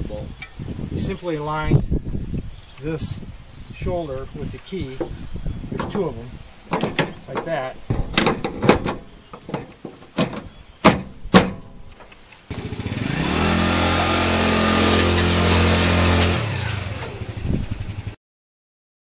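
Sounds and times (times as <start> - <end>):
metal clicks and knocks: 5.8 - 12.2
quad bike engine running: 12.5 - 18.2.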